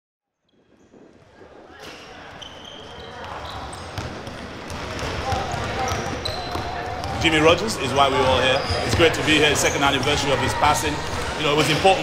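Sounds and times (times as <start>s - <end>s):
basketballs bouncing on court: 0.7s - 10.1s
chatter of many voices: 1.2s - 12.0s.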